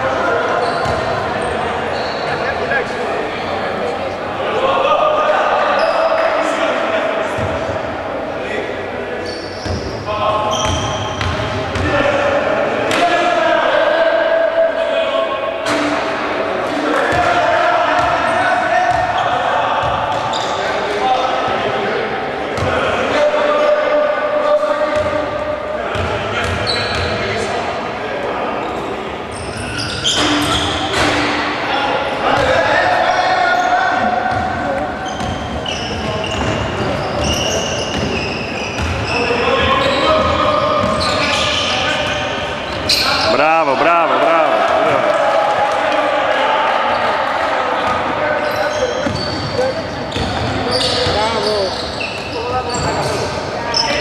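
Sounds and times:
voices calling out: 0.0s - 54.0s.

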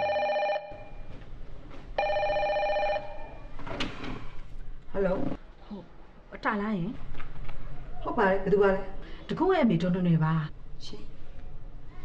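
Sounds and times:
desk telephone ringing: 0.0s - 1.0s, 2.0s - 3.5s.

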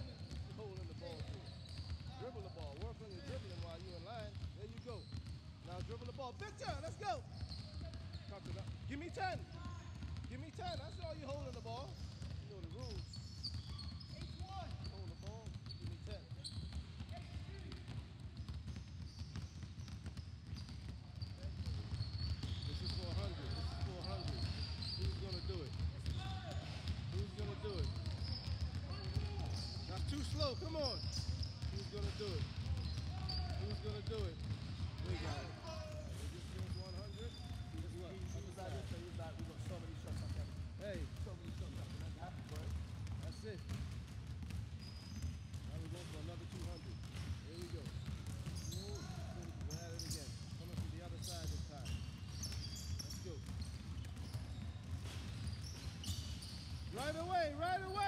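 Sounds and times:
basketballs bouncing on wooden floor: 0.0s - 58.0s
players' voices: 0.1s - 18.2s, 21.2s - 44.0s, 45.6s - 55.5s, 56.8s - 58.0s.

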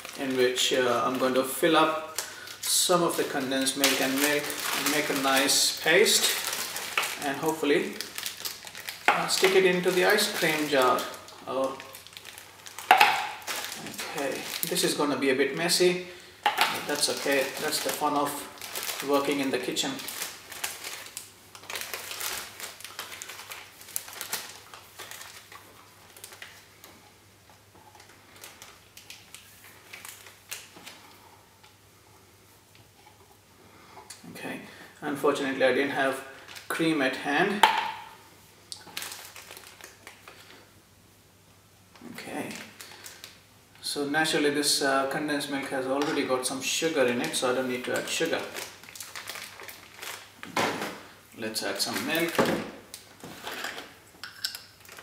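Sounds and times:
plastic bag crinkling: 0.0s - 27.2s, 27.8s - 31.2s, 35.4s - 40.7s, 42.0s - 43.4s, 45.4s - 55.0s.

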